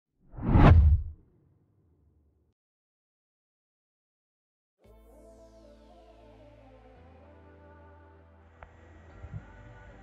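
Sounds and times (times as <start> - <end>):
whoosh with deep rumble: 0.3 - 1.2.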